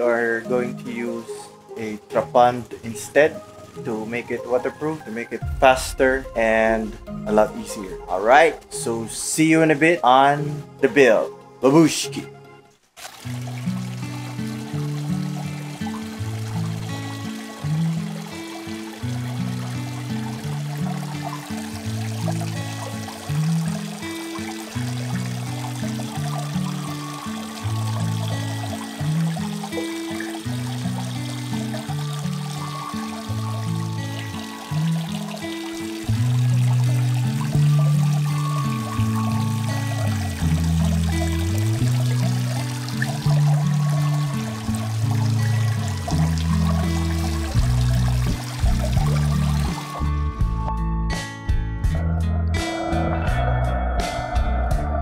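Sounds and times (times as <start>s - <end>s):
water pouring into a pond: 13.0s - 50.3s
music with stepping bass line: 46.2s - 55.0s.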